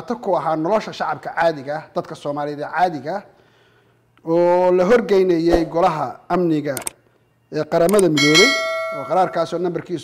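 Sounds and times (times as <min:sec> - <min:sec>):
notification bell chime: 0:08.2 - 0:09.6.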